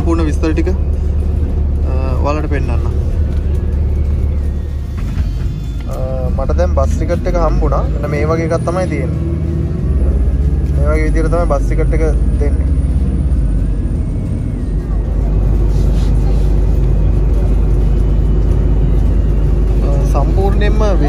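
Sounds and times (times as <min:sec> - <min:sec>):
bus engine rumble: 0:00.0 - 0:21.0
road noise: 0:00.0 - 0:21.0.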